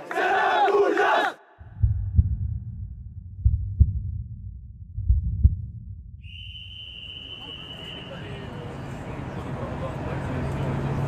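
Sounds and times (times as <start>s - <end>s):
heartbeat double thumps: 1.6s - 6.2s
crowd noise: 6.9s - 11.0s.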